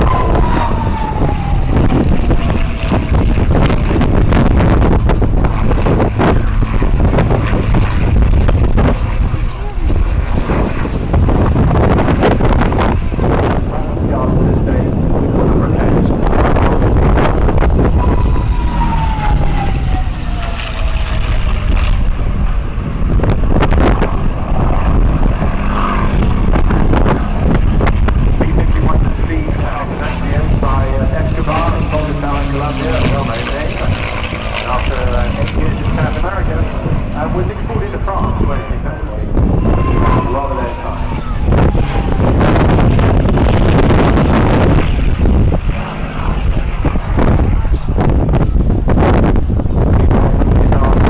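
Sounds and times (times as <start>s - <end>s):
aircraft engine passing overhead: 0.0s - 51.0s
wind noise on microphone: 0.0s - 51.0s.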